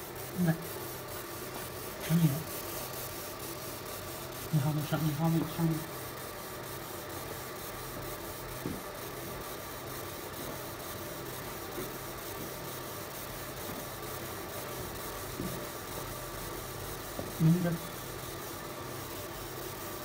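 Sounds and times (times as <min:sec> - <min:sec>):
laser marking machine hissing: 0:00.0 - 0:20.0.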